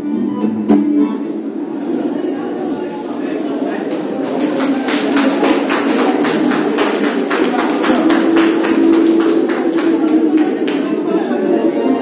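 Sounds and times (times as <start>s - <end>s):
crowd chatter: 0.0s - 12.0s
music in a hall: 0.0s - 12.0s.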